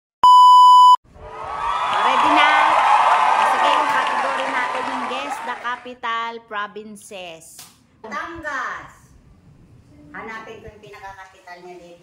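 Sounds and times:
buzzy test tone beep: 0:00.2 - 0:01.0
voices in room: 0:01.4 - 0:12.0.

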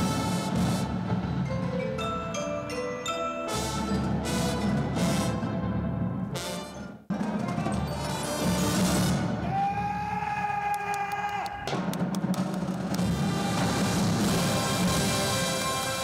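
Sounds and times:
drum corps playing: 0:00.0 - 0:01.8, 0:03.5 - 0:09.4, 0:11.5 - 0:16.0.

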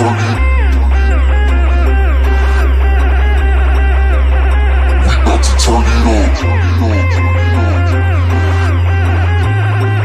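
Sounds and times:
electronic music with heavy bass: 0:00.0 - 0:10.0.

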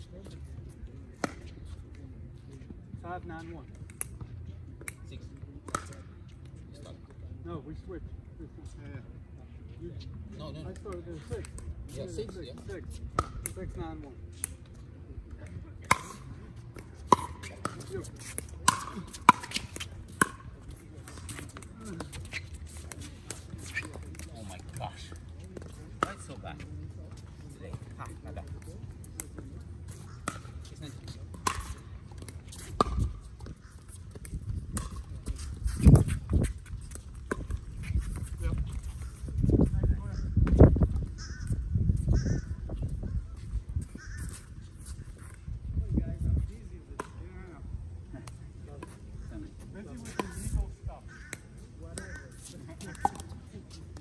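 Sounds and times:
wind buffeting microphone: 0:32.8 - 0:46.8.

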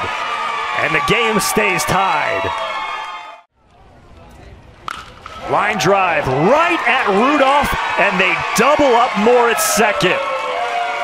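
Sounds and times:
ballpark crowd noise: 0:00.0 - 0:11.0
bat cracking a ball: 0:04.8 - 0:05.5.

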